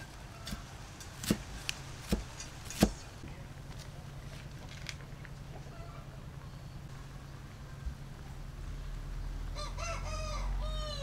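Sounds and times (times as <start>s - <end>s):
rooster crowing: 9.5s - 11.0s.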